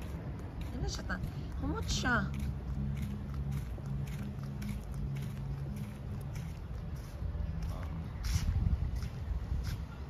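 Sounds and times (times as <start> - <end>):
footsteps on brick paving: 0.0 - 10.0.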